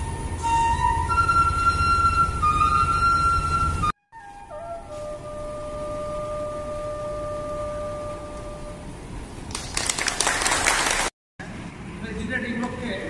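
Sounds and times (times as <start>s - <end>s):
bamboo flute long note: 0.0s - 9.0s
people applauding: 9.5s - 11.1s.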